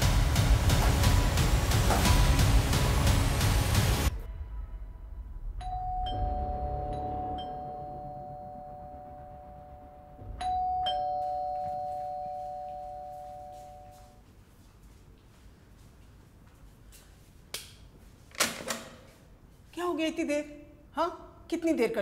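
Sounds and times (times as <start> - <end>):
two-tone doorbell chime: 5.6 - 14.1.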